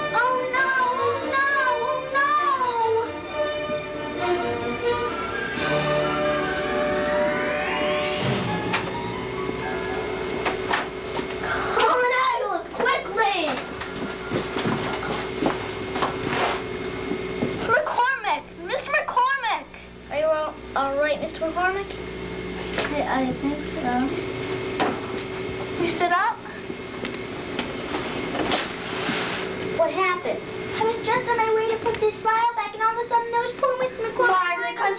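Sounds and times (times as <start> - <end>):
steady electrical hum: 0.0 - 34.9
footsteps on hard floor: 3.6 - 4.0, 13.6 - 17.7.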